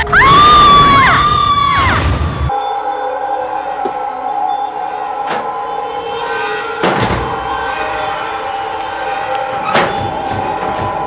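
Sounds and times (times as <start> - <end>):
woman screaming: 0.0 - 2.1.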